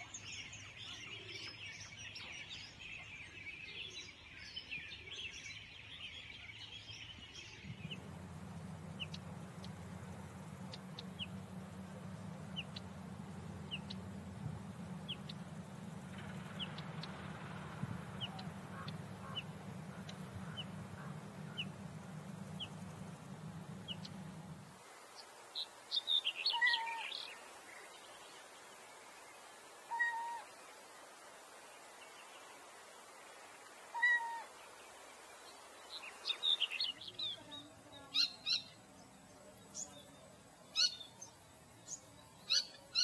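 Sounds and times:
small bird chirping: 0.0s - 24.5s, 35.8s - 43.0s
low steady hum: 0.0s - 43.0s
louder bird call: 26.4s - 27.2s.

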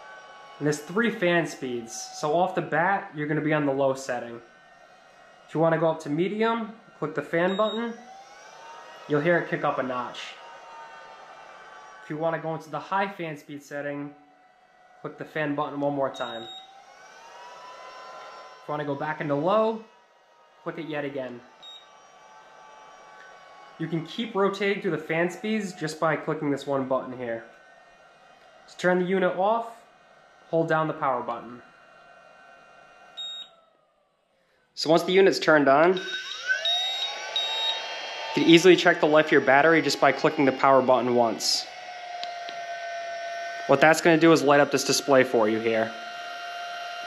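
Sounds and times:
high electronic beep: 7.5s - 7.8s, 16.2s - 16.7s, 21.6s - 21.9s, 33.2s - 33.5s, 36.0s - 37.9s
blower fan humming: 36.0s - 47.0s.

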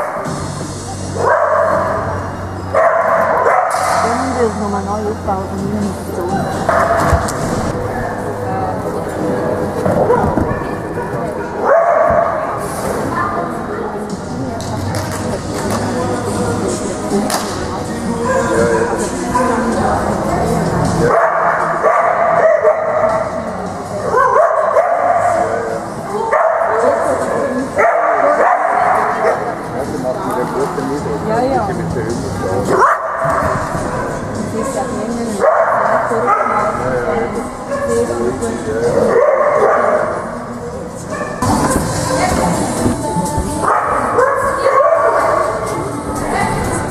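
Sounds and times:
people's voices: 0.0s - 46.9s
dog barking: 1.2s - 2.1s, 2.8s - 4.1s, 6.7s - 7.3s, 10.0s - 12.5s, 21.1s - 23.3s, 24.1s - 25.5s, 26.3s - 29.5s, 32.7s - 34.8s, 35.4s - 36.8s, 39.1s - 40.3s, 43.6s - 45.6s
dog giving a drawn-out high bark: 2.8s - 4.1s, 11.6s - 12.4s, 24.1s - 25.4s, 27.8s - 29.4s, 39.1s - 40.2s.

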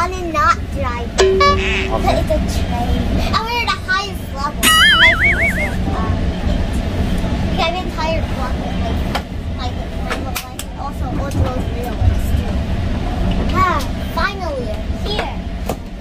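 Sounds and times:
train rumbling inside coach: 0.0s - 4.6s, 5.9s - 16.0s
short high voices: 4.6s - 5.8s.

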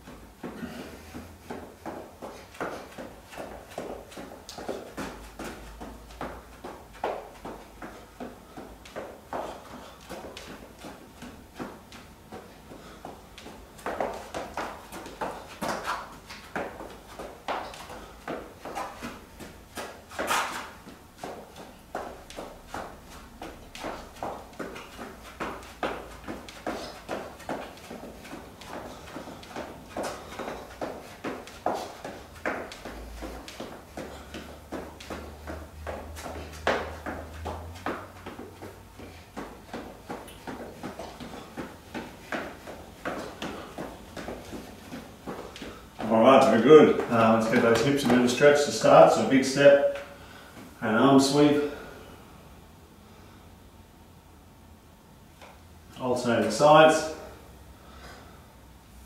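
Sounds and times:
footsteps jogging on rubber floor: 0.0s - 52.0s.

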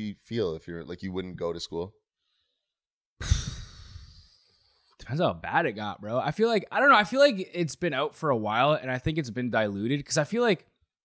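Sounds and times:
person sighing into microphone: 3.2s - 4.2s.

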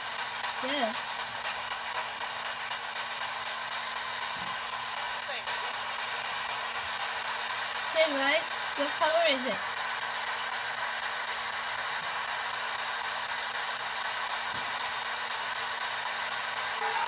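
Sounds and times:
radio static hiss: 2.8s - 6.4s, 7.4s - 17.0s.

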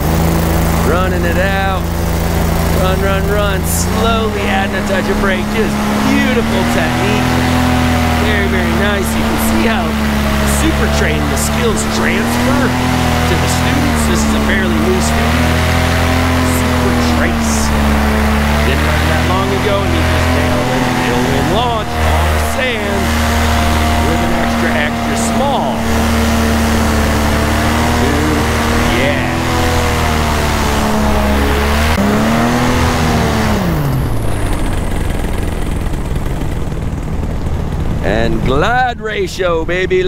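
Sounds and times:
paramotor engine and propeller drone: 0.0s - 40.0s.

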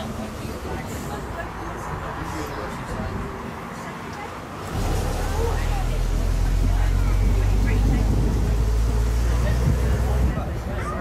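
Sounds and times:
bus engine rumbling: 0.0s - 11.0s
wind buffeting microphone: 4.7s - 11.0s.

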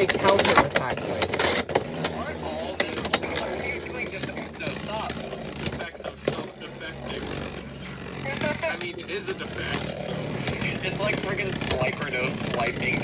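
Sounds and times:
spinning tops whirring: 0.0s - 13.0s
tops clicking and scraping: 0.0s - 13.0s.

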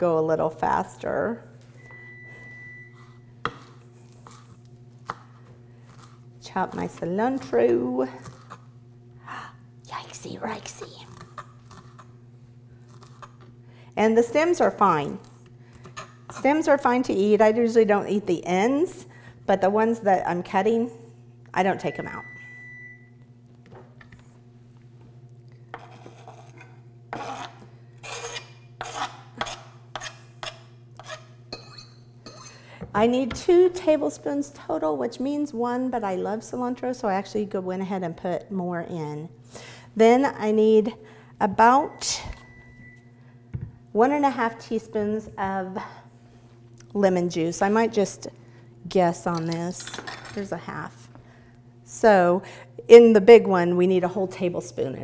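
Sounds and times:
steady low hum: 0.0s - 55.0s
knife scraping cutting board: 25.8s - 32.6s.

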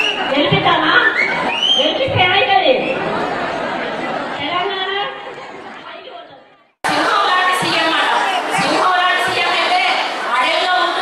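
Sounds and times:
crowd chatter: 0.0s - 11.0s
woman talking into microphone: 1.8s - 2.9s.

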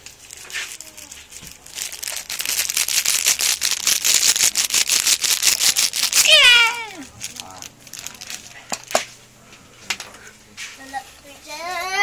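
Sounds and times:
plastic crinkling: 0.0s - 9.0s.

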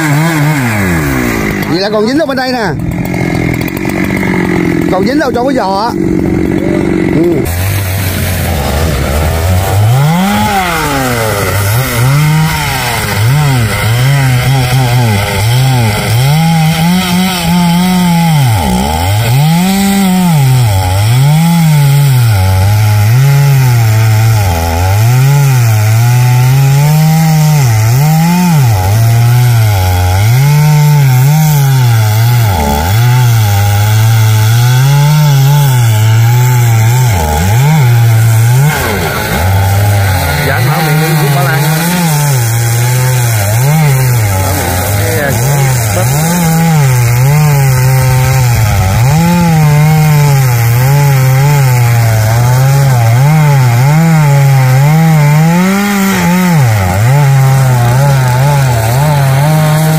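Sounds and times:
chainsaw cutting wood: 0.0s - 59.9s.

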